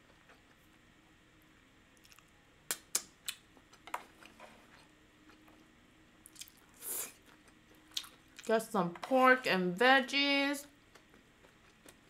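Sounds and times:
wet mouth clicks: 0:02.0 - 0:03.4
person chewing noodles: 0:02.0 - 0:04.4, 0:05.2 - 0:08.5, 0:10.8 - 0:12.0.

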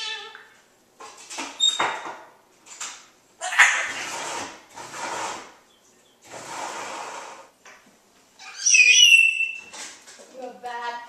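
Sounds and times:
parrot raspy noises: 0:03.4 - 0:04.5
parrot whistled call: 0:08.4 - 0:09.7.

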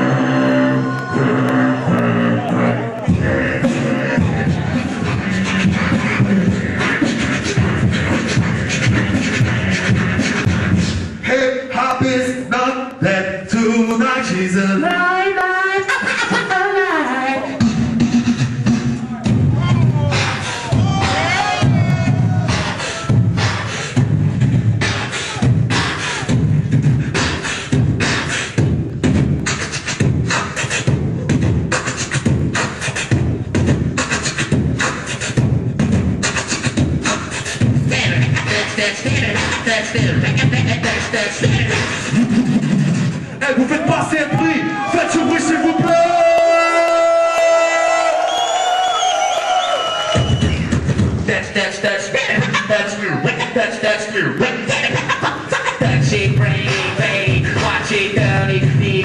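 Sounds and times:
beatboxing into a microphone: 0:00.0 - 0:59.0.

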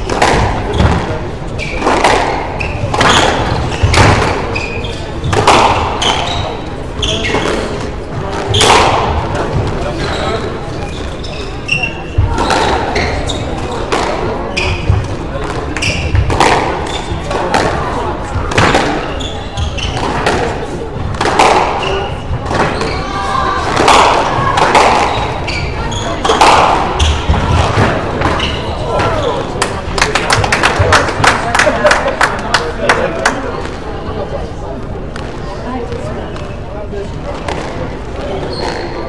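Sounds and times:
shoes squeaking on wooden floor: 0:00.7 - 0:07.8, 0:09.5 - 0:13.9, 0:14.5 - 0:15.1, 0:19.0 - 0:20.2, 0:21.8 - 0:23.4, 0:25.0 - 0:29.4
squash ball cracking off rackets: 0:13.8 - 0:17.8, 0:23.6 - 0:25.4.

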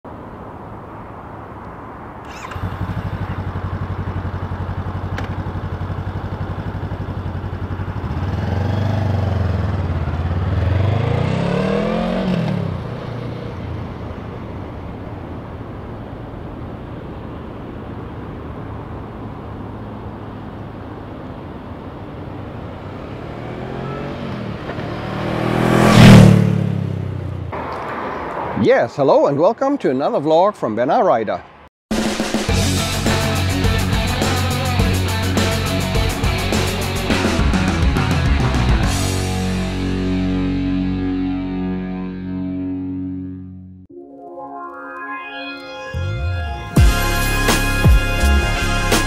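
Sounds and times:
motorcycle engine idling and revving: 0:02.2 - 0:27.7, 0:32.4 - 0:42.4
motorcycle riding past: 0:02.2 - 0:28.3.

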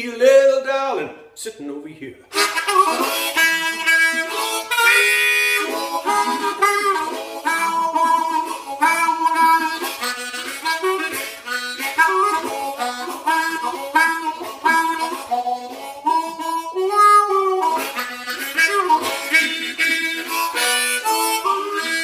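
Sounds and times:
harmonica blues solo: 0:02.3 - 0:22.0.

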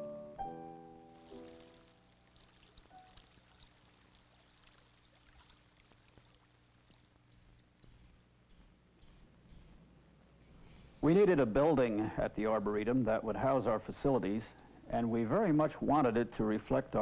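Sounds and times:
water trickling in stream: 0:01.1 - 0:07.8
bird chirping: 0:06.9 - 0:17.0.

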